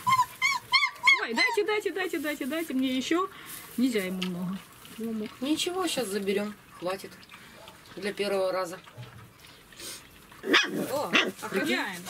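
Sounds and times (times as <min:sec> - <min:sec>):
puppy barking: 0:10.4 - 0:11.4.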